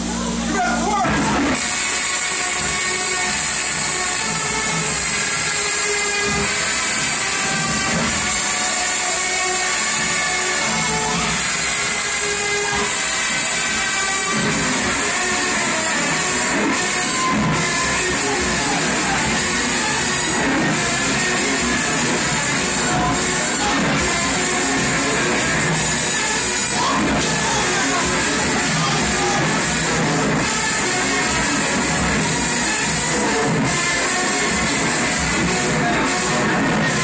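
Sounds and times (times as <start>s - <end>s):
loud dance music over speakers: 0.4s - 37.0s.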